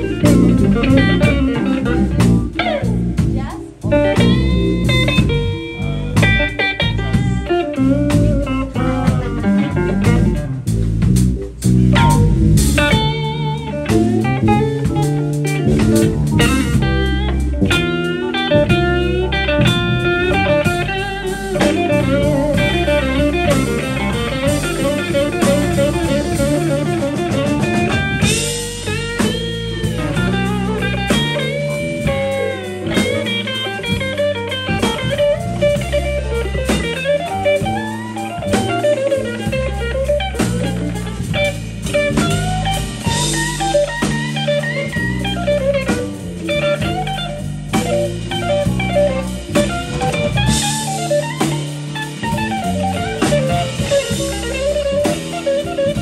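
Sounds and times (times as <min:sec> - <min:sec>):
drum kit: 0:00.0 - 0:56.0
electric bass: 0:00.0 - 0:56.0
electric guitar lead: 0:00.0 - 0:56.0.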